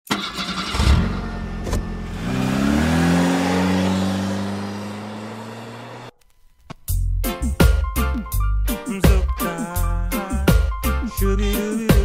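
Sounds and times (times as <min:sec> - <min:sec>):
car engine revving: 0:00.1 - 0:06.1.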